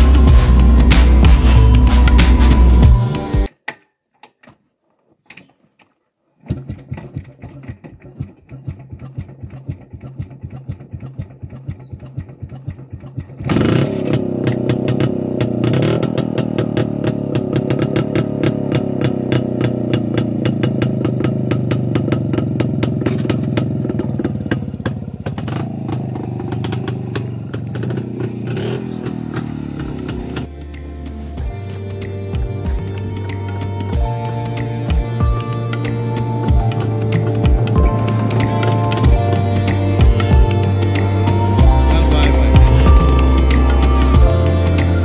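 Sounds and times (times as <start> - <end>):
two-stroke motorcycle engine running: 0.0 - 3.5, 6.5 - 45.0.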